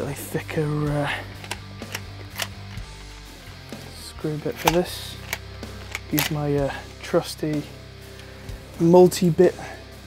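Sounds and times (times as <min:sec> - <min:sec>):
background music with low notes: 0:00.0 - 0:10.0.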